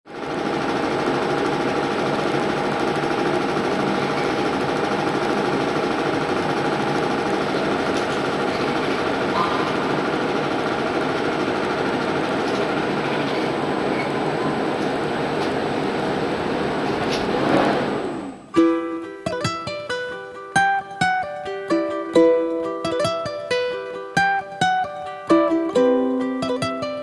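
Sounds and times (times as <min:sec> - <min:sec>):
fast mechanical rattle: 0:00.1 - 0:18.5.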